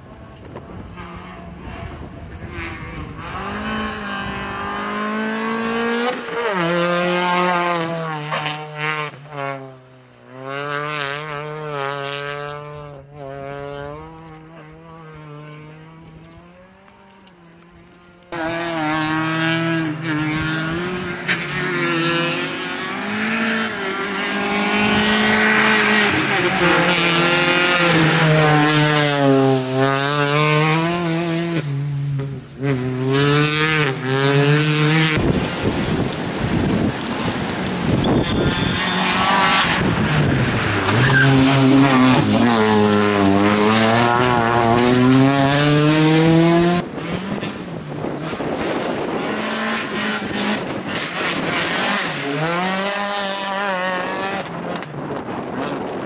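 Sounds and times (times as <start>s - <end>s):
rally car engine revving hard: 0.9s - 9.7s, 10.3s - 17.1s, 18.3s - 56.0s.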